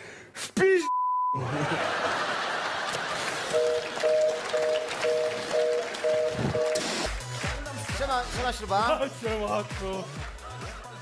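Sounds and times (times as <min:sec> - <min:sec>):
two-pitch beep: 0:00.9 - 0:01.4, 0:03.5 - 0:07.0
audience applause: 0:01.4 - 0:07.8
music with a beat: 0:04.5 - 0:11.0.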